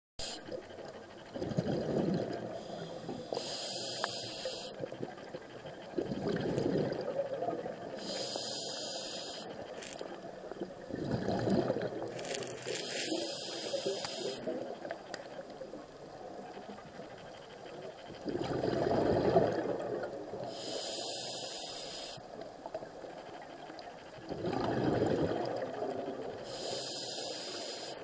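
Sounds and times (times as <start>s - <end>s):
diver breathing through regulator: 1.7s - 4.9s, 7.9s - 10.0s, 11.0s - 14.6s, 20.4s - 22.3s, 26.4s - 28.0s.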